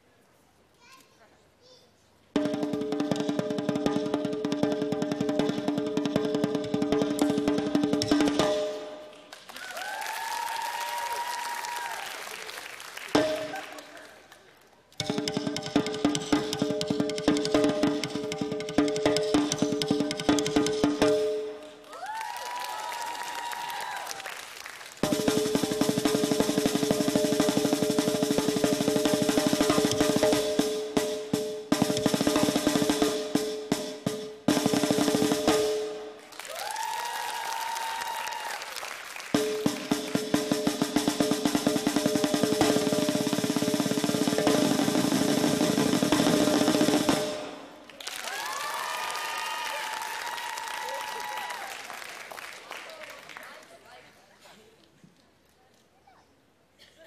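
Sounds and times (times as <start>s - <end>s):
fast snare drumming: 2.4s - 9.0s, 13.1s - 13.8s, 15.0s - 21.6s, 25.0s - 36.0s, 39.2s - 47.7s
crowd noise: 9.1s - 15.0s.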